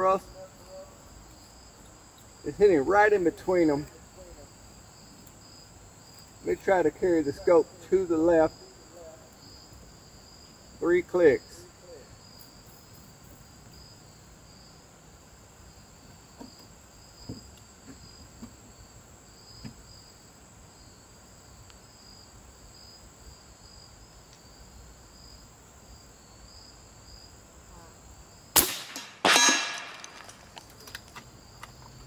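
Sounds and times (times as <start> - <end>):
crickets chirping: 0.0 - 32.0
air rifle shot: 28.6 - 30.2
slug striking target: 28.6 - 30.3.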